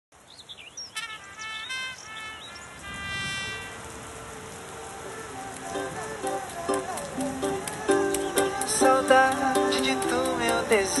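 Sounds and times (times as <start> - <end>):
faint background hiss: 0.1 - 11.0
bird-like chirps and whistled calls: 0.2 - 2.8
plucked-string notes: 5.6 - 11.0.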